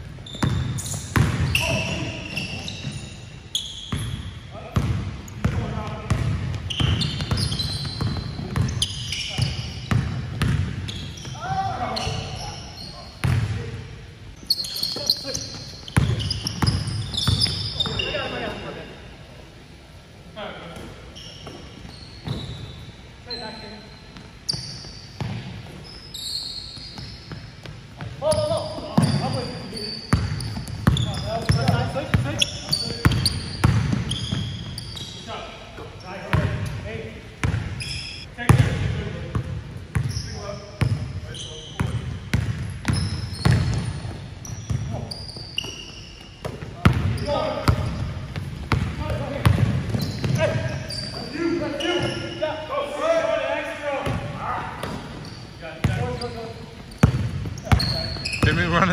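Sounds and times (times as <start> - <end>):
sneakers squeaking: 0.0 - 19.3, 20.5 - 58.9
basketball bouncing on hardwood: 9.9 - 10.7.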